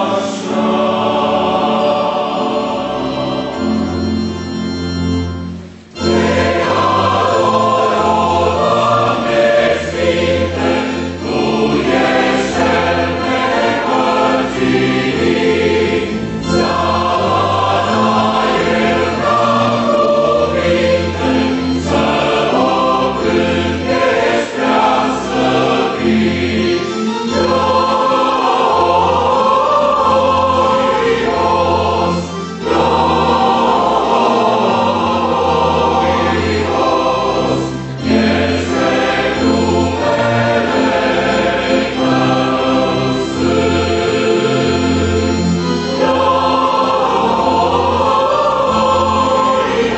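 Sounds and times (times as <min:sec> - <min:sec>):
choir singing a hymn: 0:00.0 - 0:49.9.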